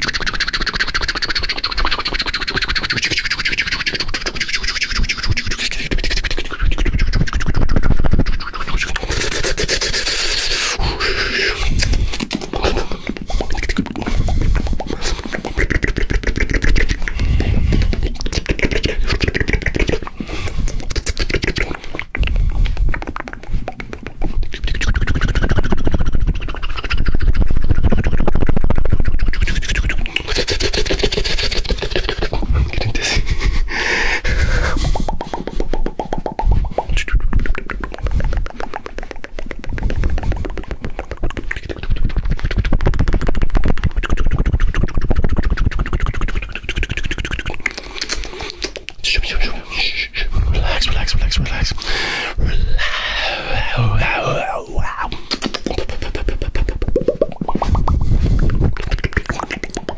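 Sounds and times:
mouth clicks pops and smacks: 0:00.0 - 0:59.9.

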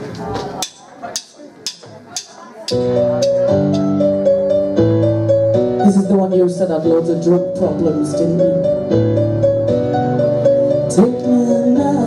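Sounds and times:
drumsticks clicking together: 0:00.6 - 0:03.4.

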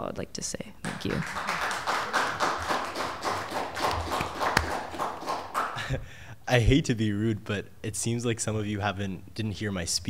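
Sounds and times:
audience applauding: 0:00.9 - 0:06.0.

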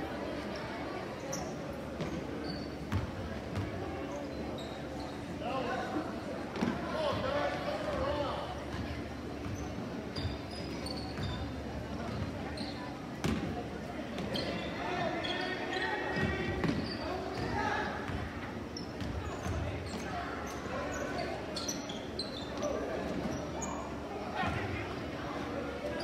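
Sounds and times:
spectators' voices: 0:00.0 - 0:26.0.

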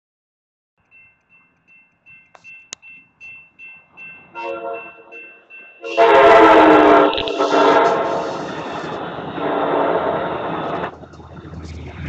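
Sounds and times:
railroad crossing bell ringing: 0:00.8 - 0:09.4.

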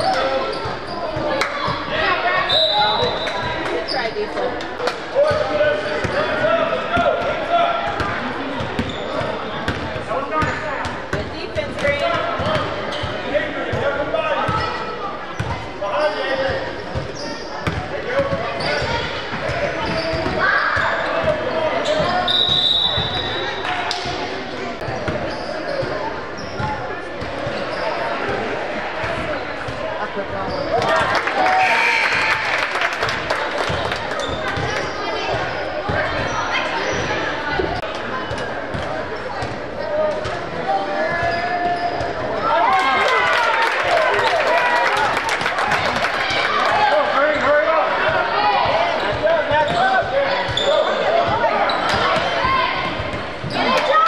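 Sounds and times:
indistinct voices in echoing gym: 0:00.0 - 0:54.0.

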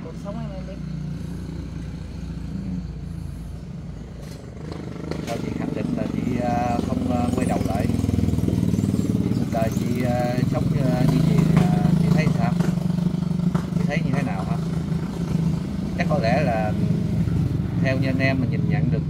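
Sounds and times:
small engine droning: 0:00.0 - 0:19.0
voices: 0:05.2 - 0:12.8, 0:13.7 - 0:14.7, 0:16.0 - 0:16.9, 0:17.8 - 0:19.0.

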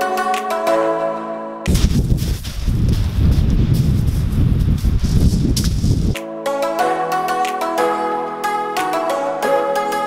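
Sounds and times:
footsteps crunching on pebbles: 0:01.7 - 0:06.1
wind buffeting microphone: 0:01.7 - 0:06.2.

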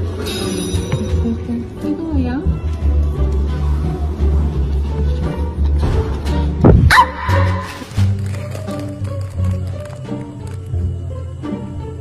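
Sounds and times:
background music: 0:00.0 - 0:12.0
dog barking: 0:06.9 - 0:07.6.

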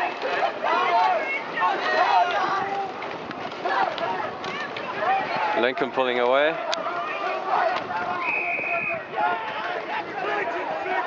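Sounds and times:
steady outdoor hiss: 0:00.0 - 0:11.0
voices calling out: 0:00.0 - 0:11.0.

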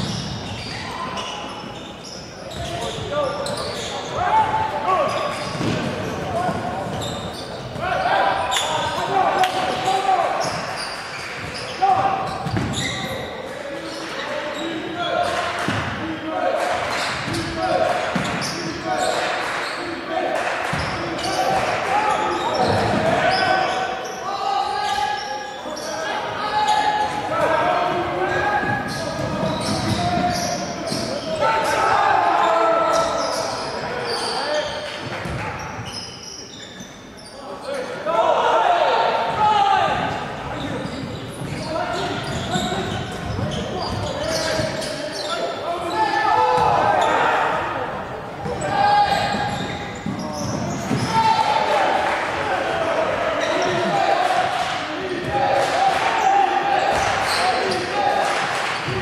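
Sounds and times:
players calling out: 0:00.0 - 0:59.0
basketball bouncing on wood floor: 0:12.4 - 0:12.8.

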